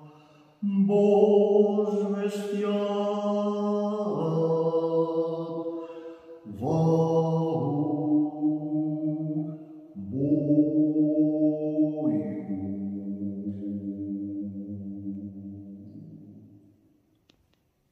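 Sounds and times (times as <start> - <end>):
man singing chant unaccompanied: 0.0 - 16.5.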